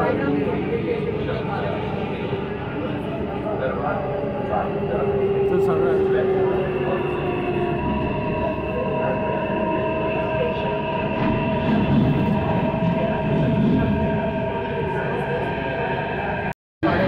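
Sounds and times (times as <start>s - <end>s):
train electric whine: 0.0s - 17.0s
wheels rumbling on rails: 0.0s - 17.0s.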